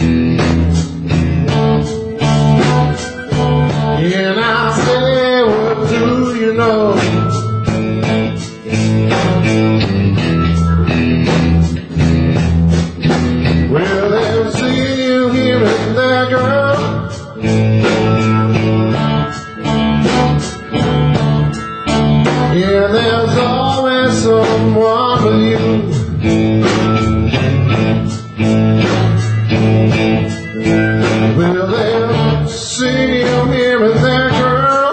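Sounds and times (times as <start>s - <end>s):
bending electric guitar lead: 0.0s - 34.9s
blues band playing: 0.0s - 34.9s.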